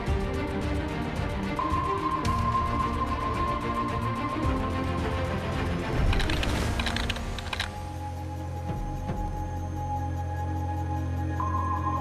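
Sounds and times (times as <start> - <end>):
soundtrack music: 0.0 - 12.0
rapid small clicks: 6.0 - 7.9.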